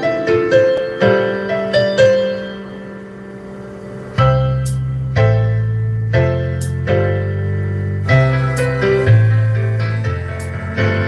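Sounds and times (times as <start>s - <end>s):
slow piano-like keyboard chords: 0.0s - 11.0s.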